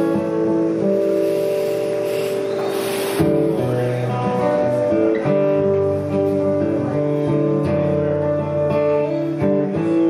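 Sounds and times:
acoustic guitar chord ringing: 0:00.0 - 0:10.0
hiss: 0:00.8 - 0:03.7.

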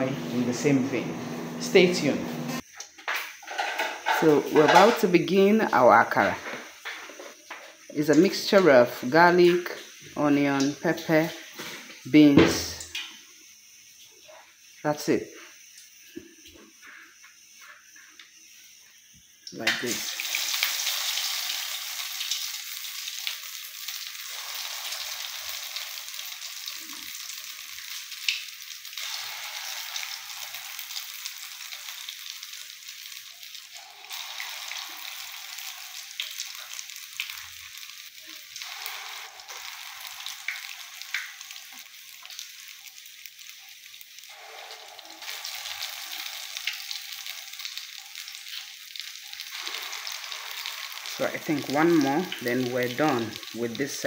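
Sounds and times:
fritters deep-frying in hot oil: 0:02.0 - 0:54.0.

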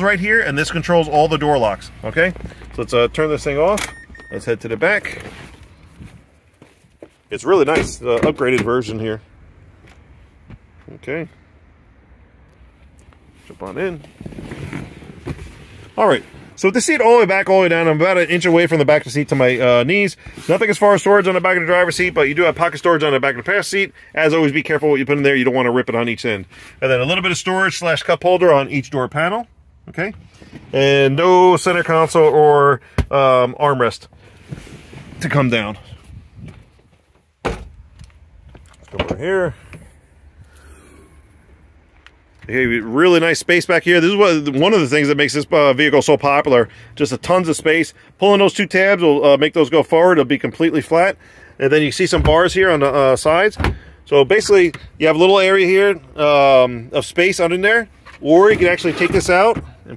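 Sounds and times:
clothing rustling against car seat: 0:13.1 - 0:16.6, 0:19.2 - 0:23.6, 0:34.2 - 0:37.3.

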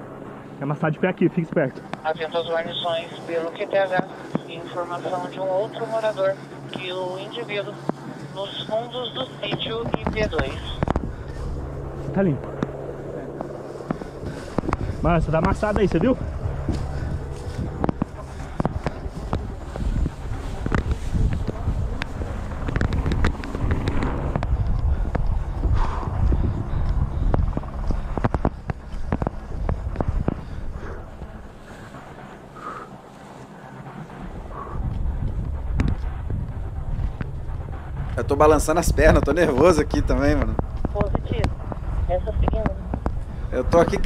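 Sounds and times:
wind rumble on microphone: 0:01.4 - 0:44.0
rustling grass and brush: 0:01.9 - 0:38.1.

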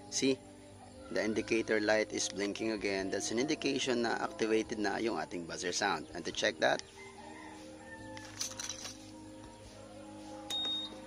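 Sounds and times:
short high-pitched beeps: 0:10.5 - 0:11.0.

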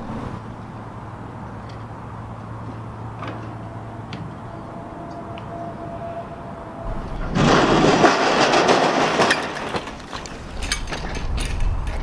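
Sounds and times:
bicycle rattling down metal slide: 0:06.9 - 0:12.0
bike crashing clatters: 0:06.9 - 0:12.0.

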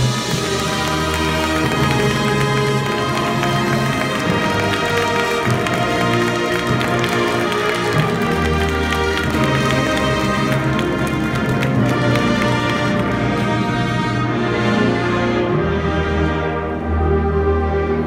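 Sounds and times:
brass sustained chords: 0:00.0 - 0:18.0.

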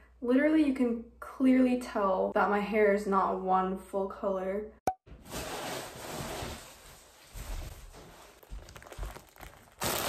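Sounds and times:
rustling and handling noise: 0:05.1 - 0:10.0.

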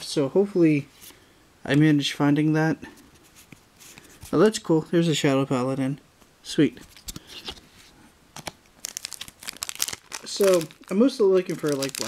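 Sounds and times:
foil wrapper crinkling: 0:08.4 - 0:12.0.

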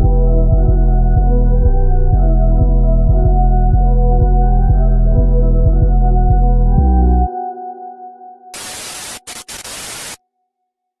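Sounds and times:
tv static hiss: 0:08.6 - 0:10.2.

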